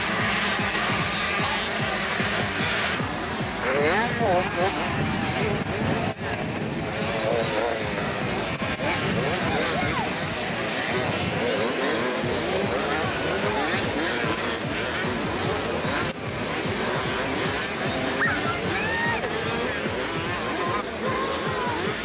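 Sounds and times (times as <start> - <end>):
music: 0.0 - 11.4, 12.0 - 22.0
motocross bike engines revving: 0.0 - 22.0.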